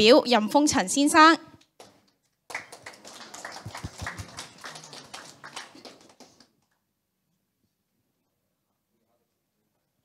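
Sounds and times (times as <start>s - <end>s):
audience applauding: 1.8s - 6.8s.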